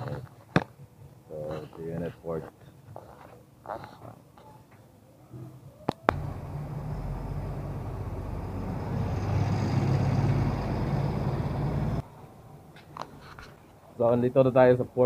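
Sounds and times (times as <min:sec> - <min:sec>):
vehicle engine running: 0:06.1 - 0:12.0.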